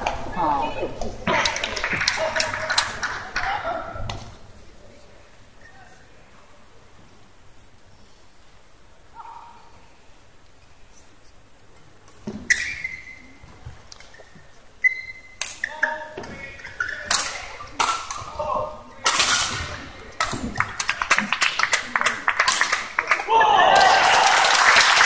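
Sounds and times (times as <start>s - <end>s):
shoe squeaks on court: 14.2s - 16.0s
crowd shouting and cheering: 23.0s - 25.0s.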